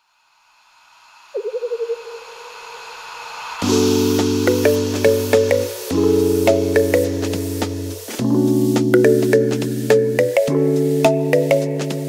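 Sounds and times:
synthesized hiss: 0:00.0 - 0:12.0.

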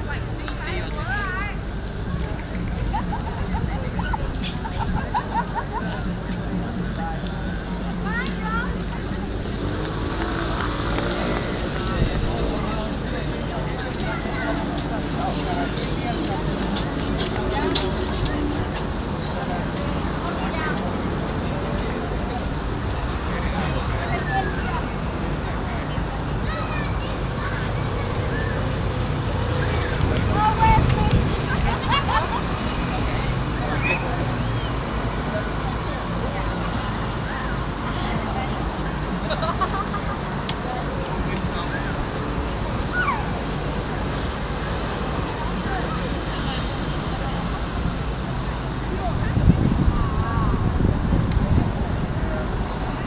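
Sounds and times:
faint voices of passers-by: 0:00.0 - 0:53.0
traffic rumble: 0:00.0 - 0:53.0.

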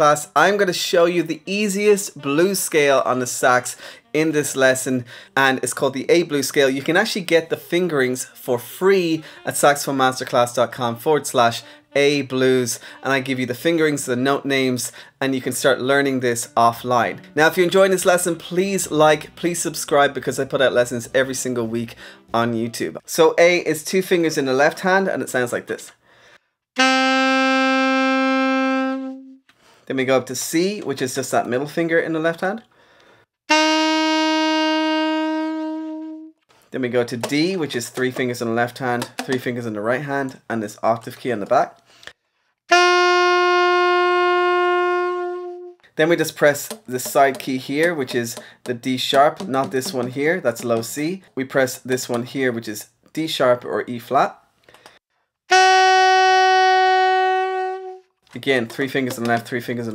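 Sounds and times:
saxophone holding a long note: 0:26.8 - 0:29.4, 0:33.5 - 0:36.4, 0:42.7 - 0:45.8, 0:55.5 - 0:58.1.

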